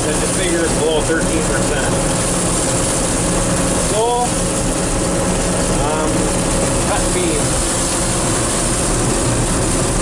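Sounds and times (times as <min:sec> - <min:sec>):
combine harvester running: 0:00.0 - 0:10.0.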